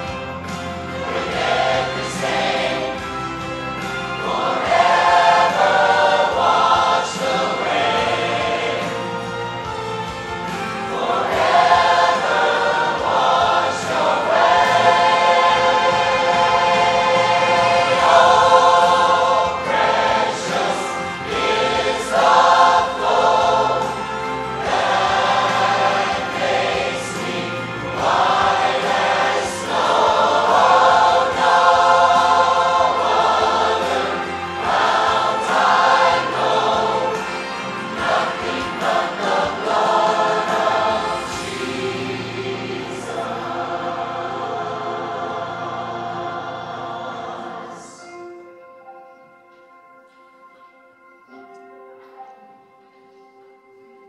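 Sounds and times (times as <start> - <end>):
choir singing in harmony: 0.0 - 49.2.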